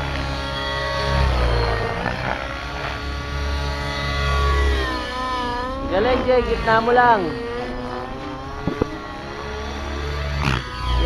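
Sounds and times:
model helicopter motor whining: 0.0s - 11.0s
pulsing low rumble: 0.0s - 11.0s.

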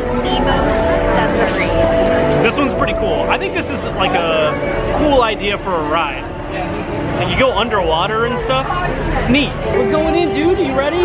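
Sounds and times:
background music: 0.0s - 11.0s
people talking: 0.0s - 11.0s.

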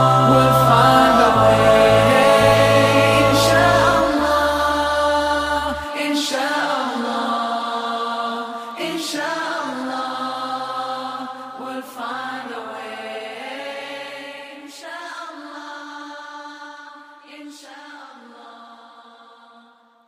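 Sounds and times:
wordless vocals holding long notes: 0.0s - 19.8s.

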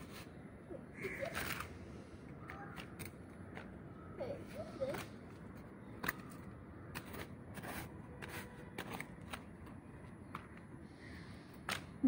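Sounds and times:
toy shovel scraping soil: 6.9s - 9.5s.

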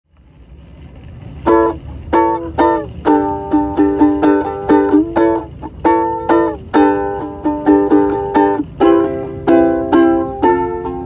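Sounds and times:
low background rumble: 0.1s - 11.0s
ukulele chord strummed: 1.4s - 11.0s.

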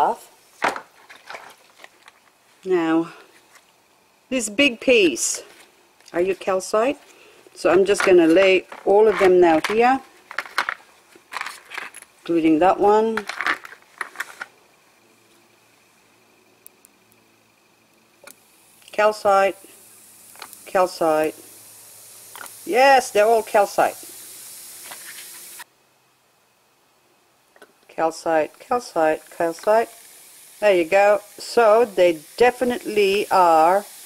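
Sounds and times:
crystals fizzing in acid: 16.8s - 25.7s, 28.0s - 34.0s.

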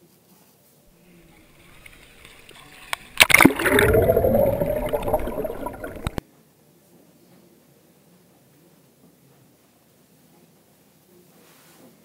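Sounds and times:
water sloshing and gurgling: 1.2s - 6.2s.

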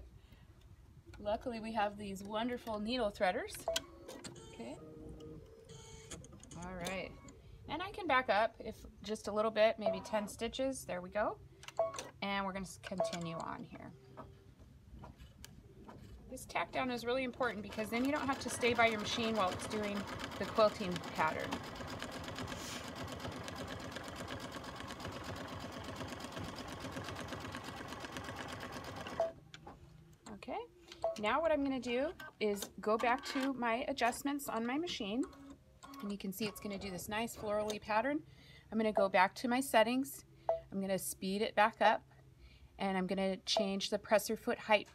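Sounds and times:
embroidery machine stitching: 17.2s - 29.3s.

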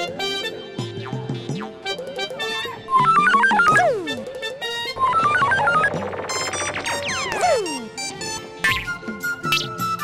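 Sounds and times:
synthesizer melody: 2.0s - 8.5s.

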